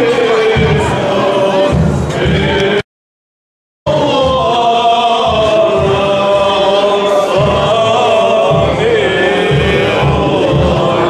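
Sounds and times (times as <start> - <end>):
church singing: 0.0 - 2.8, 3.9 - 11.0
crowd noise: 0.0 - 2.8, 3.9 - 11.0
liturgical chanting: 0.0 - 2.8, 3.9 - 11.0.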